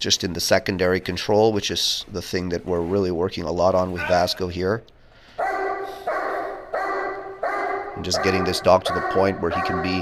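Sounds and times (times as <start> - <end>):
dog barking loudly: 5.4 - 10.0.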